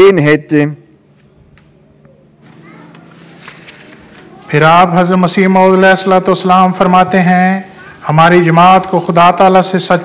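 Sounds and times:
background murmur of voices: 0:01.2 - 0:05.5
person speaking: 0:02.6 - 0:10.0.

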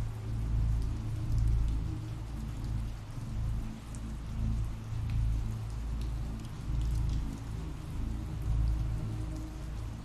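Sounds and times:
raindrops pattering: 0:00.0 - 0:10.0.

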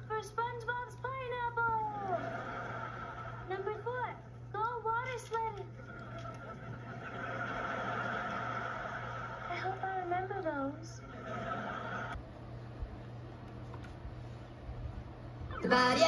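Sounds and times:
steady murmur of noise: 0:00.0 - 0:16.0.

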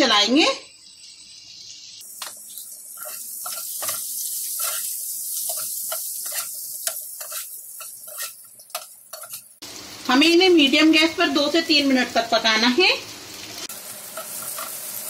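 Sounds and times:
food sizzling in hot oil: 0:00.0 - 0:15.0
spatula scraping a pan: 0:03.0 - 0:09.6, 0:14.1 - 0:14.8.

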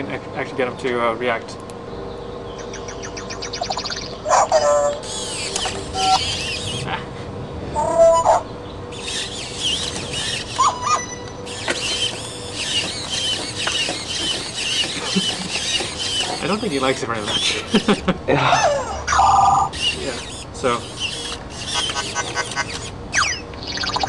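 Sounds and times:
steady low hum: 0:00.0 - 0:24.0
toy robot electronic chirps: 0:02.7 - 0:06.9, 0:07.8 - 0:17.9, 0:19.1 - 0:24.0
leg motors whirring: 0:03.2 - 0:07.0, 0:07.8 - 0:24.0.

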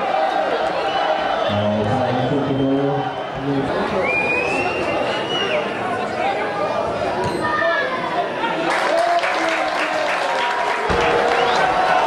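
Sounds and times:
spectators' voices: 0:00.0 - 0:12.0
crowd clapping: 0:08.6 - 0:12.0.

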